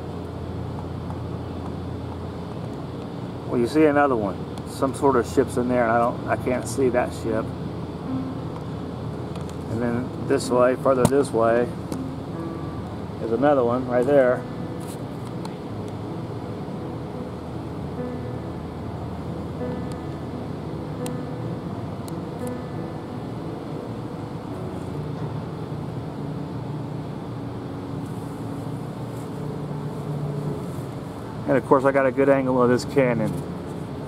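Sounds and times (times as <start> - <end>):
low outdoor background hum: 0.0 - 34.0.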